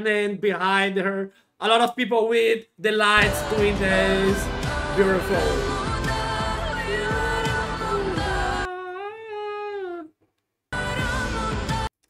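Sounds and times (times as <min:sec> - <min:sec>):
loud pop music with singing: 0:03.2 - 0:08.7, 0:10.8 - 0:11.9.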